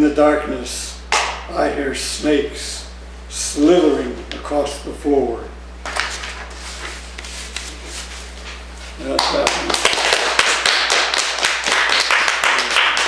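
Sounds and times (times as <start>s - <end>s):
small audience applauding: 9.1s - 13.0s.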